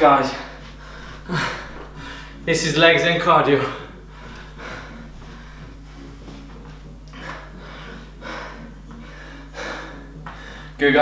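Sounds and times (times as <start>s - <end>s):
low hum: 0.0s - 10.8s
man breathing hard: 0.3s - 2.5s, 3.6s - 10.8s.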